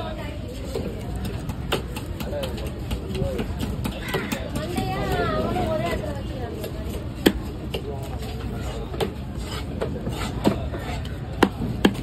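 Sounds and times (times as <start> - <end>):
voices murmuring: 0.0 - 11.9
knife chopping fish on wood: 0.8 - 5.2, 6.6 - 8.2, 8.9 - 12.0.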